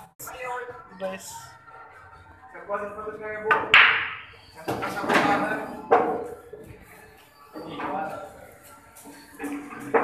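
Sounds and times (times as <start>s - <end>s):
pool balls clacking: 3.4s - 6.4s, 9.3s - 10.0s.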